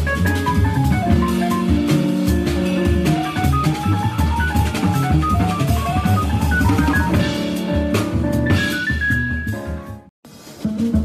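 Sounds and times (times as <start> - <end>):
double bass: 0.0 - 11.0
drum kit cymbals and kick: 0.0 - 11.0
jazz piano: 0.0 - 11.0.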